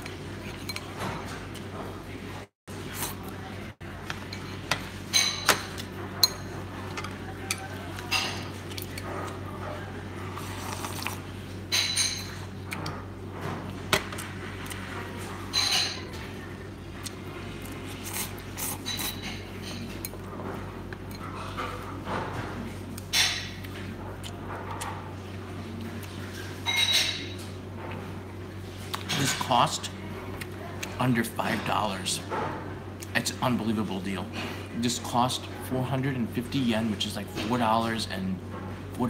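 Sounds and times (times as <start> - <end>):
tableware clinking: 4.1 - 8.6, 11.7 - 12.5, 26.6 - 27.4.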